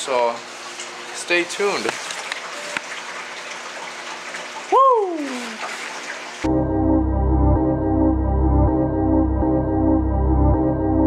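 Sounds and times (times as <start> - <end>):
running water in tanks: 0.0 - 6.5
ambient music: 6.5 - 11.0.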